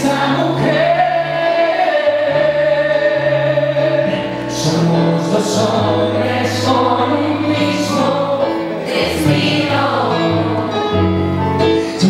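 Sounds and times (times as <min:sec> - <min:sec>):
man singing into microphone: 0:00.0 - 0:08.6.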